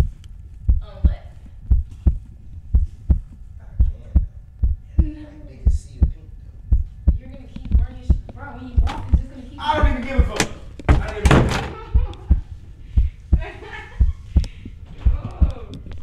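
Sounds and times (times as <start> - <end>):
heartbeat double thump: 0.0 - 16.0
faint voices: 14.8 - 16.0.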